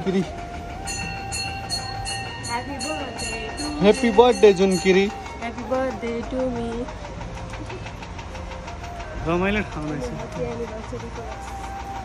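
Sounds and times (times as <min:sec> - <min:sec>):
engine rumbling with fast tick: 0:00.0 - 0:12.0.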